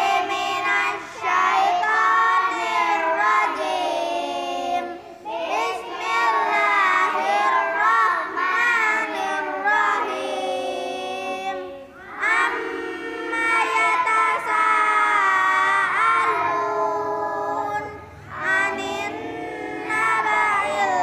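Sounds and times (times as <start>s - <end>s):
children chanting together: 0.0s - 21.0s.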